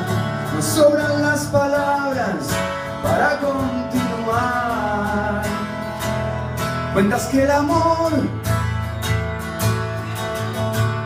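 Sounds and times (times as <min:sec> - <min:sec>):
man singing: 0:00.0 - 0:08.6
strummed acoustic guitar: 0:00.0 - 0:11.0.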